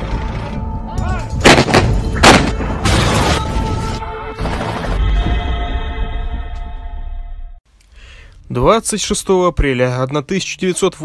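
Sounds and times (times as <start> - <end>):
cannon blasts: 1.4 - 3.6.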